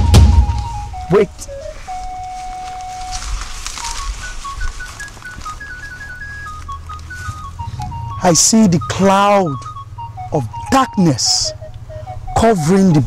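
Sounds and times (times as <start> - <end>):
slow melody of high notes: 0.0 - 13.0.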